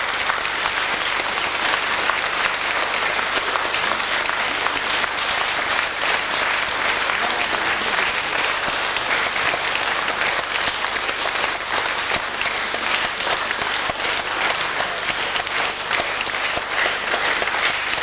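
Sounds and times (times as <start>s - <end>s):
audience applauding: 0.0s - 18.0s.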